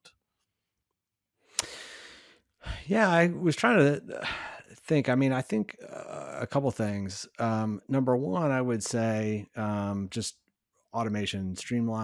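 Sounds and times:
man sighing: 1.6s - 3.0s, 4.1s - 4.6s.

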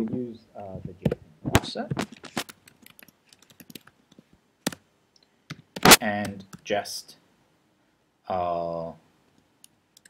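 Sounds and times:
computer keyboard typing: 2.3s - 4.0s.

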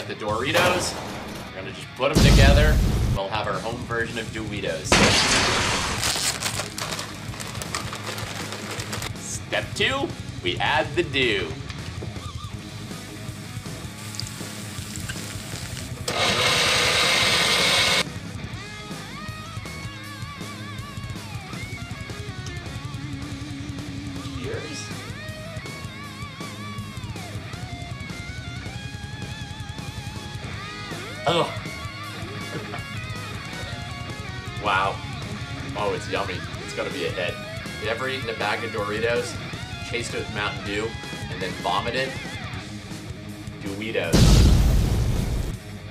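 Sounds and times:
blender grinding: 14.1s - 18.0s.

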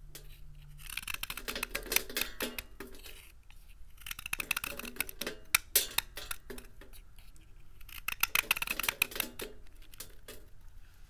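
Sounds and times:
knife shaving soap: 0.2s - 10.0s.

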